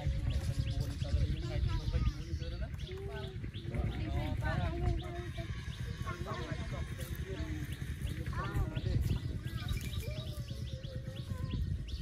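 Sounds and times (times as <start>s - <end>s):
bird chirps: 0.0s - 12.0s
people talking: 0.0s - 12.0s.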